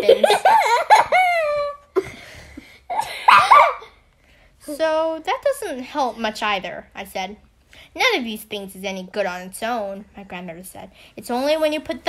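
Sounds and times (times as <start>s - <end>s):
woman laughing breathily: 0.0s - 3.6s.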